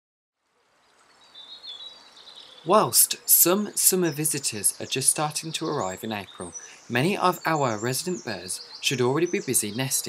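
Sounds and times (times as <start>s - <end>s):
outdoor natural ambience: 0.4s - 10.0s.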